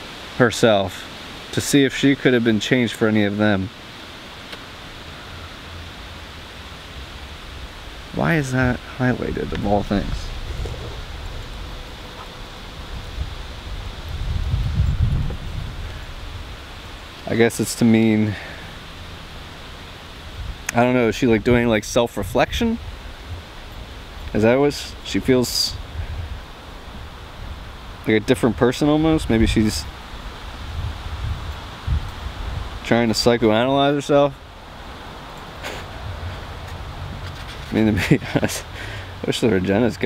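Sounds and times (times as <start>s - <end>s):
wind rumbling on microphone: 6.8s - 40.0s
person speaking: 8.1s - 11.0s
rustling: 35.4s - 37.9s.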